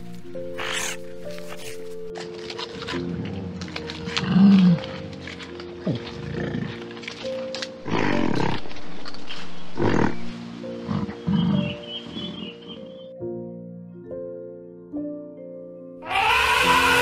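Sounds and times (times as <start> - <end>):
background music: 0.0 - 17.0
low loud animal calls: 16.0 - 17.0.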